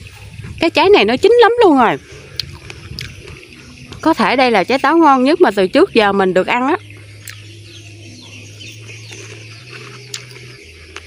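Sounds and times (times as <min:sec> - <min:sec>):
faint birds chirping: 0:00.0 - 0:11.0
steady low hum: 0:00.0 - 0:11.0.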